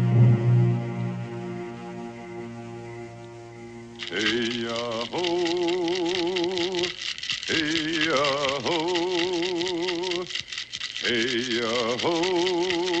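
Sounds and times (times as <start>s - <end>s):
fast rattling beat: 4.0s - 13.0s.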